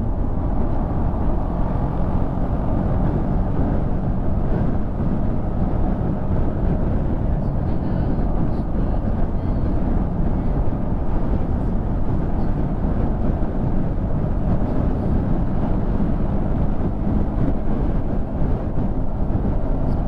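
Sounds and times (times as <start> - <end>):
motorcycle engine hum: 0.0 - 20.0
wind and road noise: 0.0 - 20.0.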